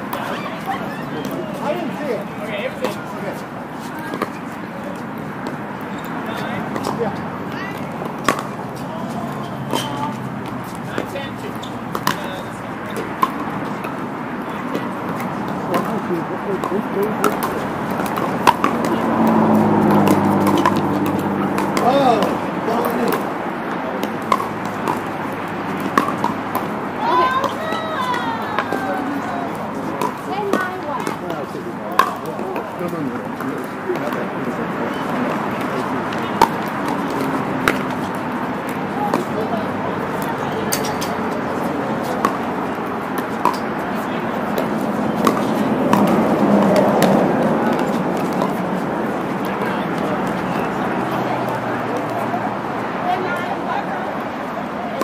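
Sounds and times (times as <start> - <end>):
murmur of voices: 0.0 - 55.0.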